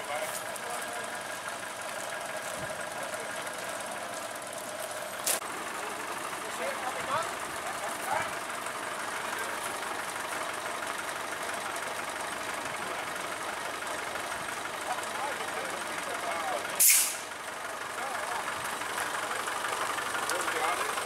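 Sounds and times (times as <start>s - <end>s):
compressed air hiss: 16.8s - 17.3s.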